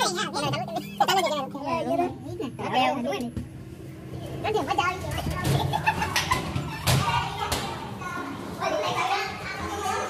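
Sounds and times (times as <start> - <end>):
young men talking and calling: 0.0 - 10.0.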